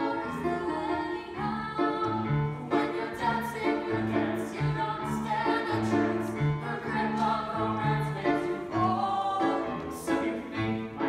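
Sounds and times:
piano playing a tango: 0.0 - 11.0.

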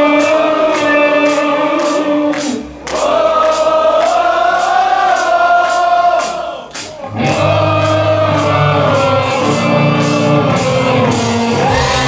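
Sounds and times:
metal band playing live: 0.0 - 3.1, 6.7 - 12.0.

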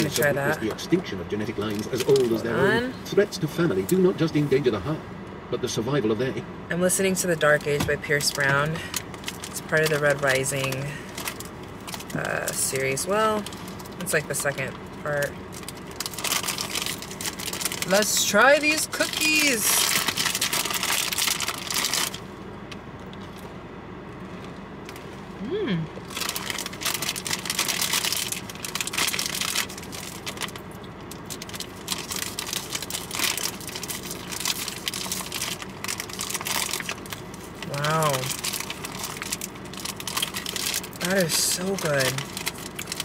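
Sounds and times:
packaging crinkling: 8.2 - 22.3, 26.0 - 43.0
person humming: 25.4 - 26.0.

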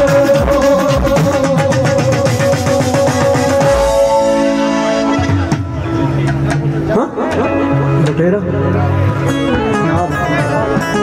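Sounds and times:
dhol drum beat: 0.0 - 4.3
band playing instrumental: 0.0 - 11.0
held keyboard note: 0.0 - 11.0.

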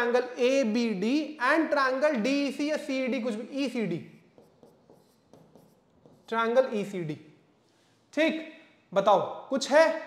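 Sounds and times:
pen tapping on glass board: 4.3 - 6.3.

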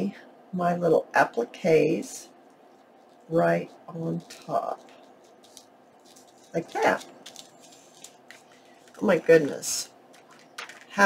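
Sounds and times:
paper and fabric rustling: 2.4 - 11.0.

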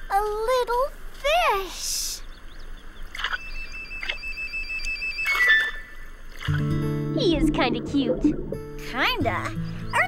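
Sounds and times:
warbling electronic tone: 7.1 - 8.9.

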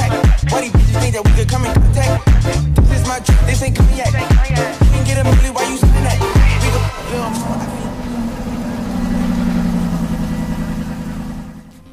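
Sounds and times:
car engine starting and idling: 0.0 - 11.9.

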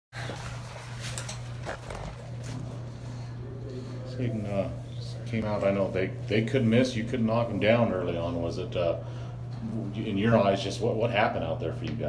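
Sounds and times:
steady low hum: 0.2 - 12.0.

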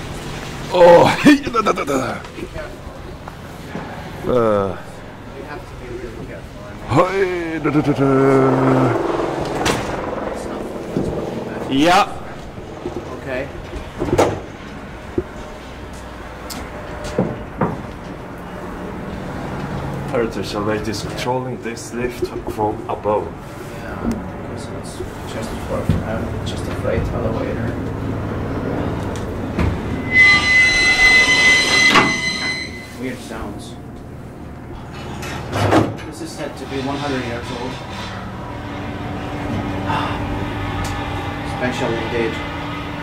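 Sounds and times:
steady mechanical hum: 0.0 - 43.0
elevator cage clanking: 25.3 - 43.0
elevator clunk: 29.0 - 33.0.

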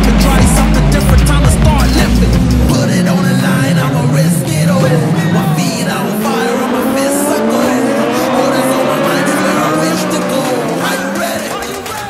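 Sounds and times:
background music: 0.0 - 12.0
buggy engines revving: 0.0 - 12.0.

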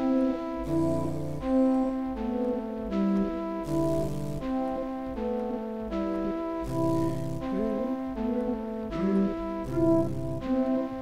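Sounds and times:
low bass line: 0.0 - 10.8
synthesised flute melody: 0.0 - 11.0.

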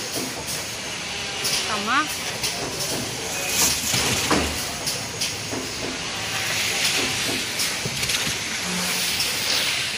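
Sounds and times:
packing machine hissing: 0.0 - 9.9.

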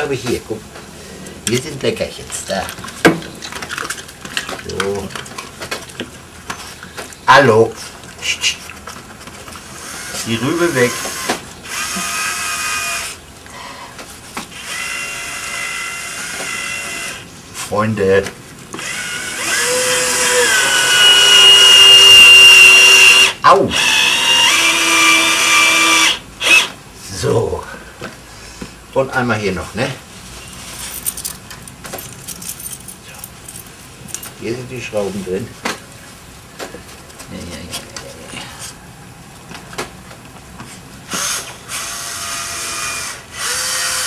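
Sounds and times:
cordless drill motor whine: 9.8 - 17.2, 18.8 - 26.8, 41.1 - 44.0
metal screws clinking: 30.8 - 34.4.

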